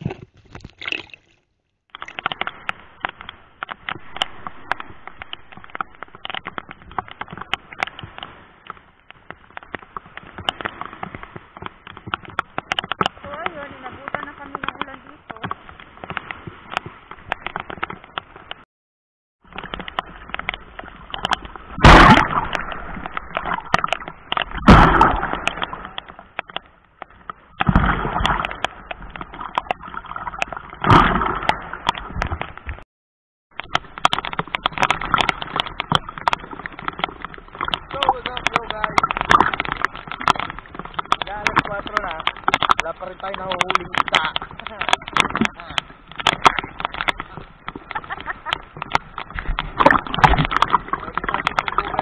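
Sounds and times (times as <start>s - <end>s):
water sloshing around wading person: 0.0s - 18.6s, 19.4s - 32.8s, 33.5s - 52.0s
water crackling on camera: 0.0s - 18.7s, 19.4s - 32.9s, 33.5s - 52.0s
waves washing over camera: 1.8s - 18.7s, 19.4s - 32.8s, 33.5s - 52.0s.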